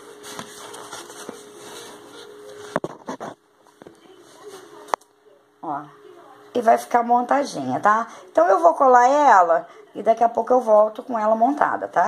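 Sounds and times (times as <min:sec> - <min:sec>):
paperboard rustling: 0:00.0 - 0:04.9.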